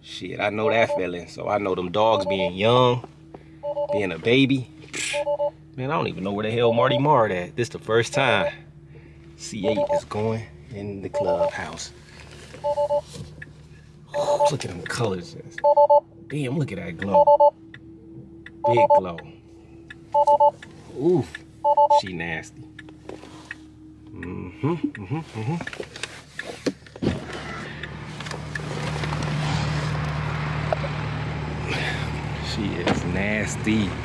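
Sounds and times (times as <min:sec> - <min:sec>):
low cabin hum: 0:00.0 - 0:31.0
car warning chime beeps: 0:00.4 - 0:05.6, 0:06.3 - 0:07.4, 0:08.0 - 0:08.7, 0:09.5 - 0:11.9, 0:12.6 - 0:25.1.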